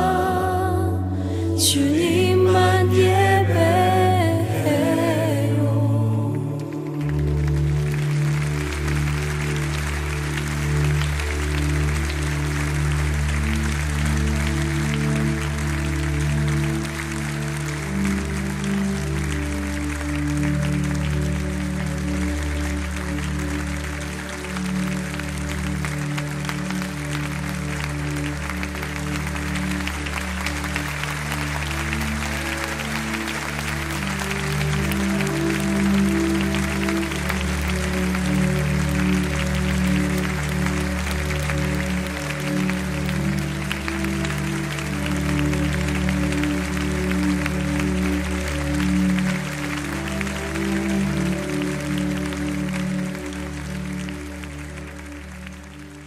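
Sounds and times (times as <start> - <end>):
worship music chords: 0.0 - 56.0
audience applause: 6.2 - 56.0.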